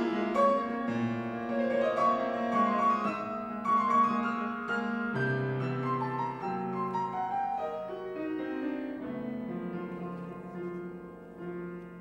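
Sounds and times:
grand piano playing: 0.0 - 12.0.

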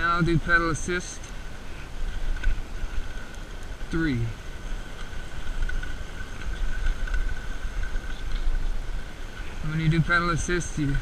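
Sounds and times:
faint high whine: 0.0 - 11.0
wind buffeting microphone: 1.3 - 11.0.

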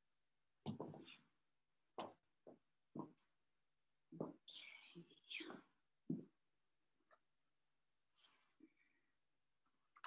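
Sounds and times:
person whispering: 4.2 - 5.8.

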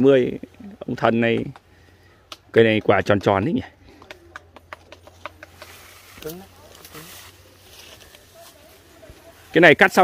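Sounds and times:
light irregular clicks and taps: 3.9 - 6.9.

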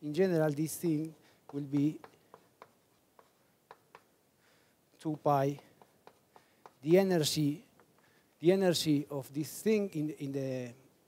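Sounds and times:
chalk tapping on blackboard: 1.4 - 4.2, 5.2 - 8.1.

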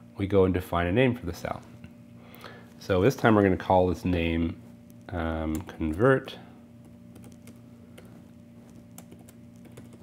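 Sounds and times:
low steady hum: 0.0 - 10.0
typing on computer keyboard: 6.8 - 8.1, 8.7 - 10.0.

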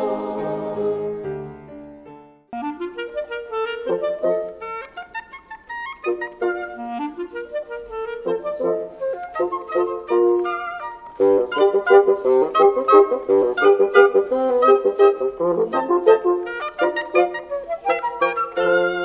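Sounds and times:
clarinet ensemble playing: 2.6 - 19.0.

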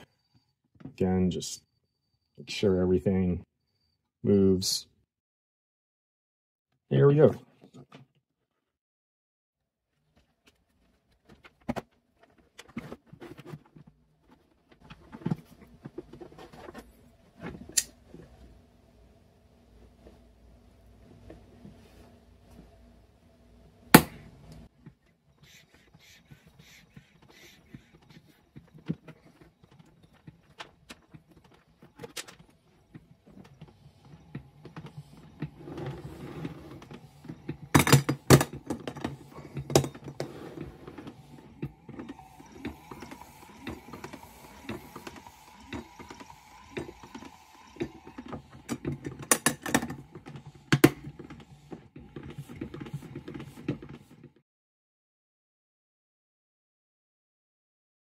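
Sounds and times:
motor humming: 32.6 - 51.7
air cylinder mechanism clicking: 41.2 - 51.5.

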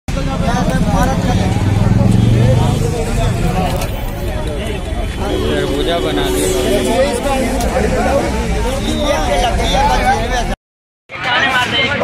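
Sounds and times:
people talking: 0.1 - 10.6
vehicle engine running: 0.2 - 9.6.

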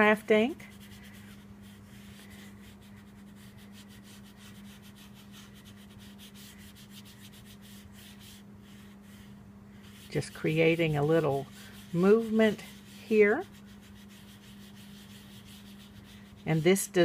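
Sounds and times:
sponge dabbing on card: 0.0 - 17.0.

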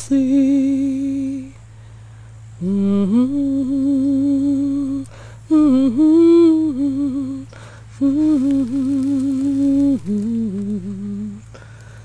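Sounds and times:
person humming a slow tune: 0.0 - 1.6, 2.6 - 11.7.

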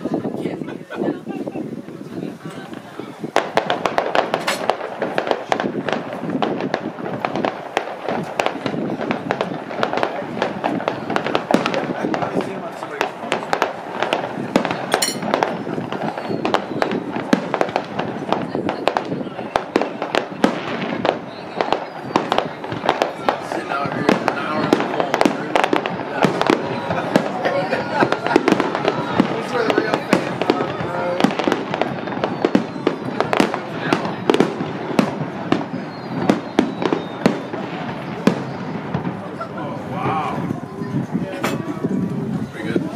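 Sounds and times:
fireworks bangs and crackles: 0.0 - 42.9
people talking: 0.0 - 42.9.

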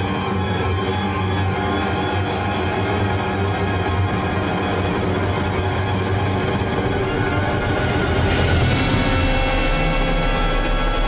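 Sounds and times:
steady low hum: 2.3 - 11.0.

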